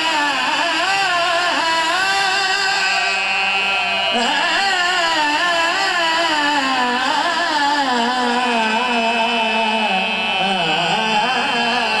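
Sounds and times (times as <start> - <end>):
men singing through loudspeakers: 0.0 - 12.0.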